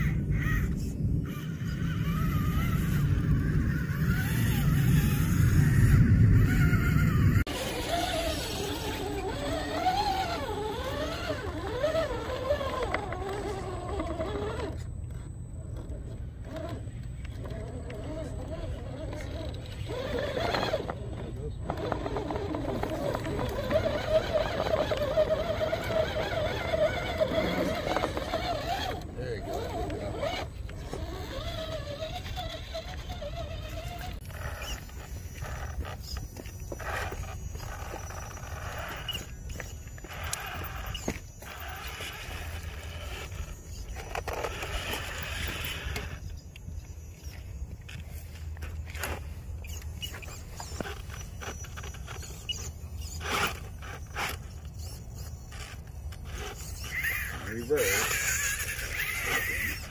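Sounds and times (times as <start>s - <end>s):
low rumble: 0.0s - 7.7s
electric motor whine: 0.0s - 59.9s
tyres scrabbling on rock: 0.8s - 59.9s.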